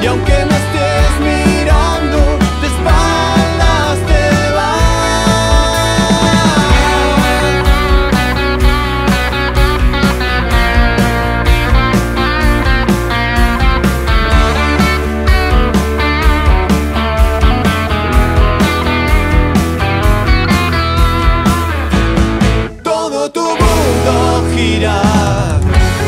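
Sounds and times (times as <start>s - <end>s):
steady drum beat: 0.0s - 22.8s, 23.6s - 26.0s
bass: 0.0s - 26.0s
electric guitar: 0.0s - 26.0s.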